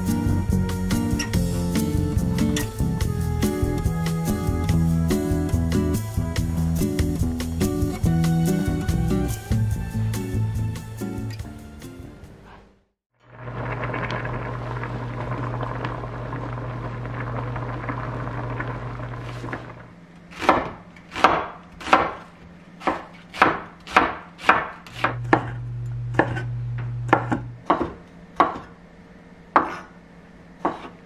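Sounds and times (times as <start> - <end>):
knife slicing onion on board: 20.3 - 26.5, 27.1 - 28.8, 29.5 - 30.0, 30.6 - 31.0.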